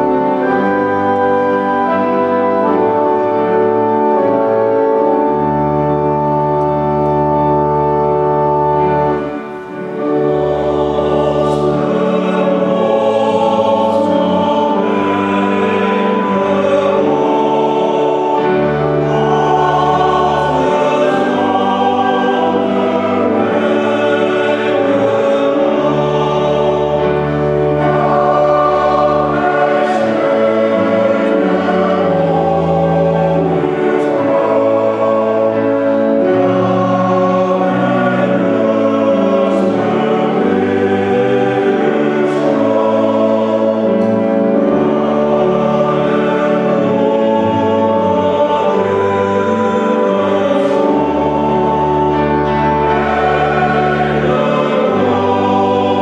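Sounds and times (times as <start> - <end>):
men's choir singing a hymn: 0.0 - 56.0
organ sustained low notes: 0.0 - 56.0.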